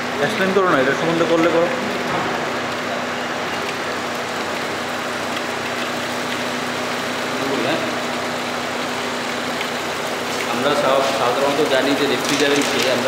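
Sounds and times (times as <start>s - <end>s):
refrigeration unit humming: 0.0s - 13.0s.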